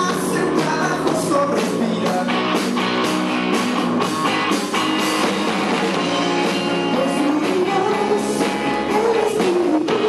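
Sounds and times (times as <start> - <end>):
drum kit: 0.0 - 10.0
electric guitar: 0.0 - 10.0.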